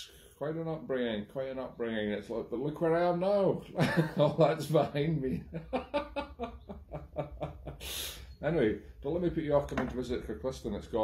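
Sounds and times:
man chuckling: 0:03.8 - 0:04.6, 0:05.2 - 0:07.8
breathy hiss: 0:07.7 - 0:09.0.

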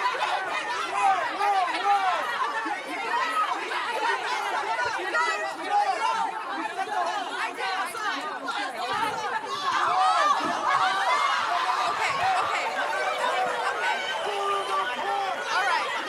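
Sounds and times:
group of people shouting: 0:00.0 - 0:16.0.

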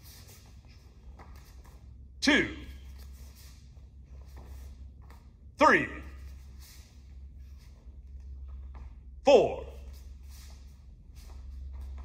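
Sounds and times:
bare feet on foam mats: 0:00.0 - 0:12.0
steady low hum: 0:00.0 - 0:12.0.

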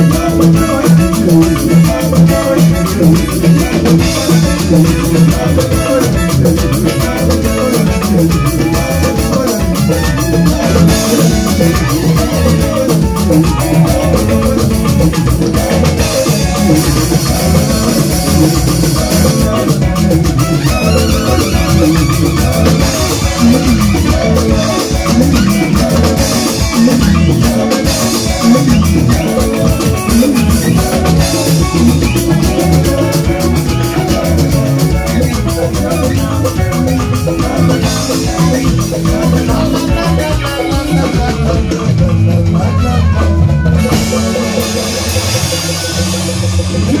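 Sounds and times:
drum kit steady beat: 0:00.0 - 0:47.0
guitar: 0:00.0 - 0:47.0
live band music through a pa: 0:00.0 - 0:47.0.

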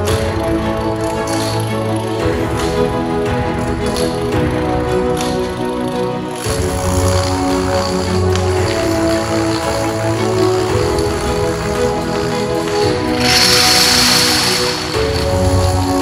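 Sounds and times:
background music: 0:00.0 - 0:16.0
dominoes clattering down: 0:00.8 - 0:02.8, 0:06.3 - 0:16.0.

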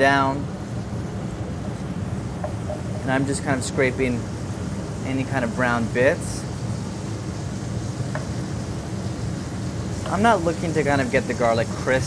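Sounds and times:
garlic sizzling in oil: 0:00.0 - 0:12.0
steady low rumble: 0:00.0 - 0:12.0.

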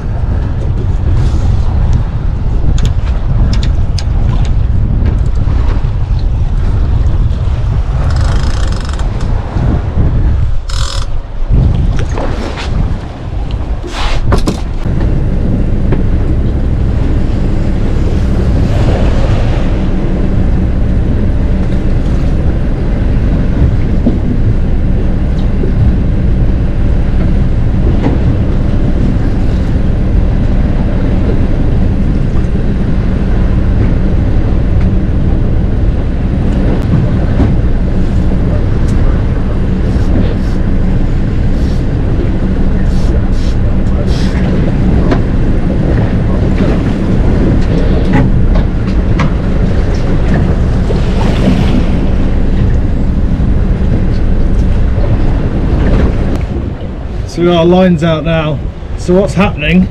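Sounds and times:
boat engine humming: 0:00.0 - 0:59.9
wind buffeting microphone: 0:00.0 - 0:59.9.

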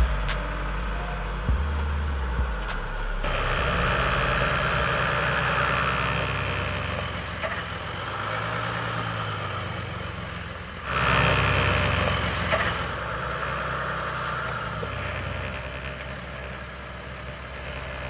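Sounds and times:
car engine at low revs: 0:00.0 - 0:18.0.

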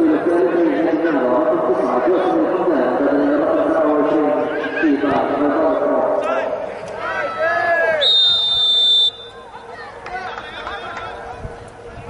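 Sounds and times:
players shouting: 0:06.2 - 0:11.3
referee's whistle blast: 0:08.0 - 0:09.4.

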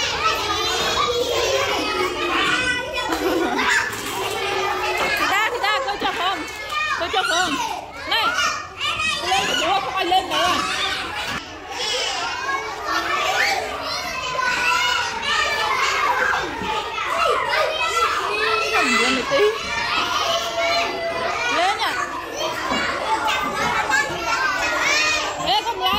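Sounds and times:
children talking and squealing: 0:00.0 - 0:25.9.

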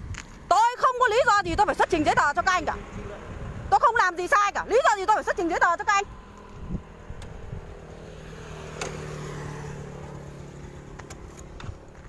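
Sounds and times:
vehicle passing on highway: 0:00.0 - 0:12.0.

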